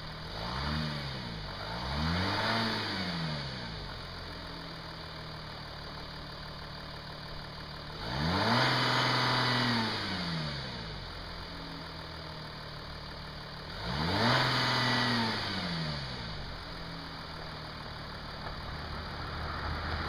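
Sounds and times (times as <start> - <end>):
diesel car engine revving: 0.0 - 20.0.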